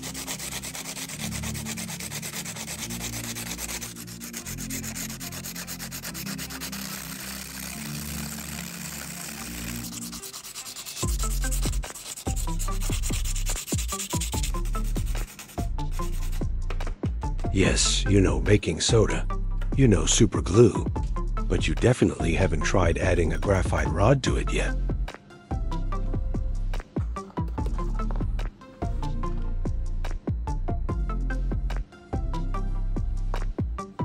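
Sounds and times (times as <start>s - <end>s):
pencil lead scratching on sandpaper: 0.0s - 16.5s.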